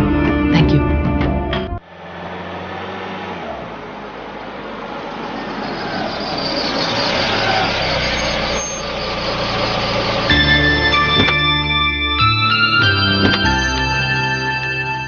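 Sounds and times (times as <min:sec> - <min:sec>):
van engine and tyres: 0:01.2 - 0:15.0.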